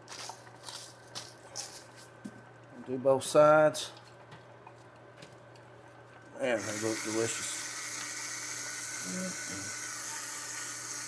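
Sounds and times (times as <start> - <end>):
salt grains rattling from shaker: 0.0 - 2.1.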